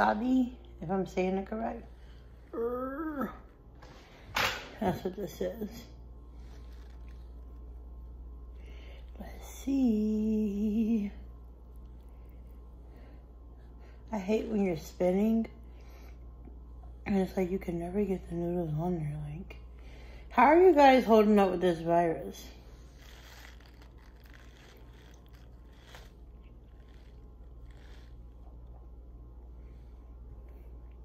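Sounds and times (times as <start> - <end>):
steady low hum: 0.0 - 31.0
chewing noodles: 22.8 - 29.0.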